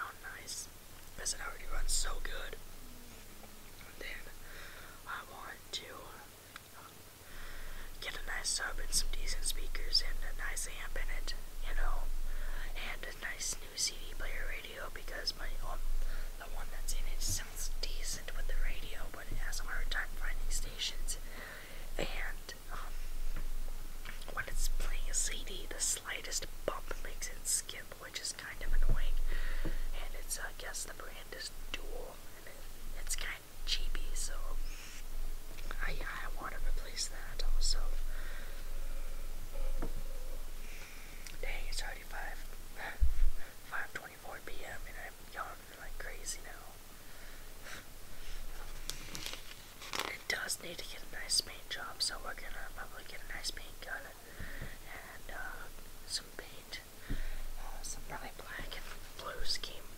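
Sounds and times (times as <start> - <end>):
person whispering: 0.0 - 4.4, 5.0 - 7.0, 8.0 - 23.0, 24.1 - 29.2, 29.9 - 35.0, 35.6 - 39.0, 41.3 - 46.8, 49.9 - 54.2, 54.8 - 56.9, 57.6 - 59.9.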